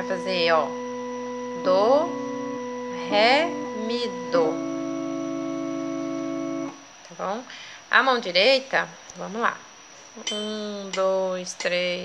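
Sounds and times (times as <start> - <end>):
electronic keyboard chord: 0.0 - 6.8.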